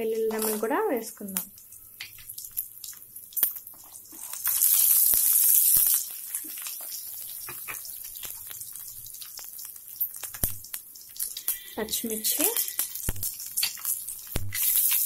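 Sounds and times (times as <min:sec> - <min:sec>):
hot oil sizzling and crackling: 0:00.0 - 0:15.0
seeds popping: 0:00.3 - 0:00.7.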